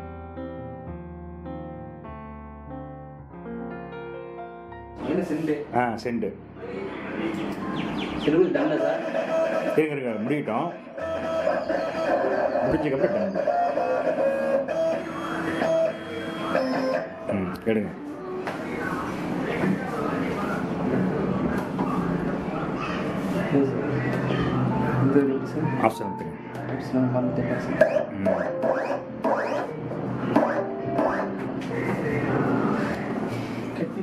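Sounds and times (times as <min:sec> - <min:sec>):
cutting plotter motors whining: 0:08.2 - 0:17.6.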